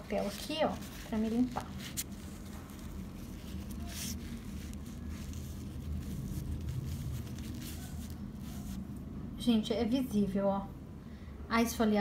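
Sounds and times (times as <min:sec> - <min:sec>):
paper towel rubbing on skin: 0:00.0 - 0:09.0
steady low hum: 0:00.0 - 0:12.0.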